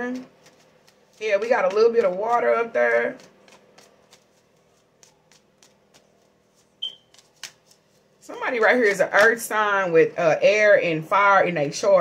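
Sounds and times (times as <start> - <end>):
cards clicking and flicking: 0.0 - 1.2, 2.9 - 7.9
sharp card snaps: 6.8 - 7.8.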